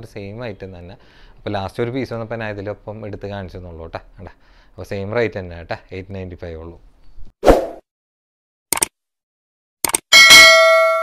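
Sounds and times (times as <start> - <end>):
bright bell ding: 10.1 - 11.0.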